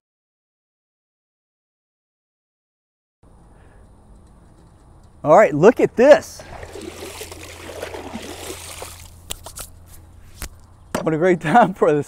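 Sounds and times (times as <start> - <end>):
hand splashing pool water: 6.4 - 9.7.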